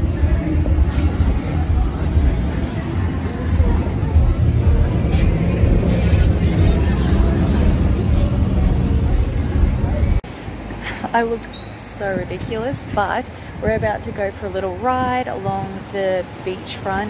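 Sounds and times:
people's voices: 0:00.0 - 0:17.0
vehicle engines rumbling: 0:00.0 - 0:17.0.

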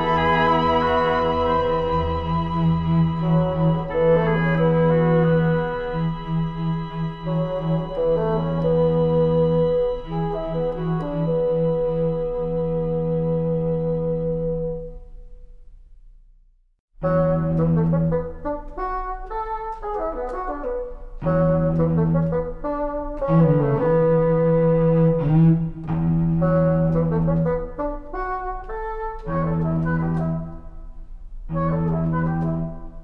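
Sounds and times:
instrumental score music: 0:00.0 - 0:33.0.

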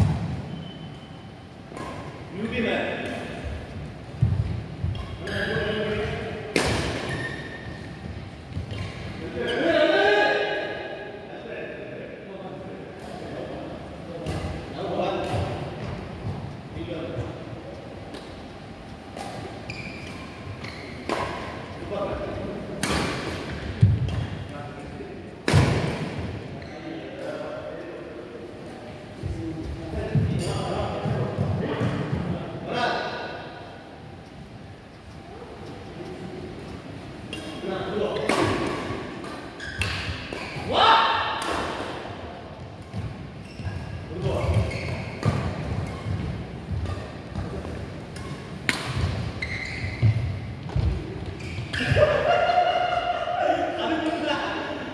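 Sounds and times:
racket hitting shuttlecock: 0:06.5 - 0:07.2, 0:22.8 - 0:24.4, 0:38.2 - 0:40.6, 0:44.5 - 0:51.0.

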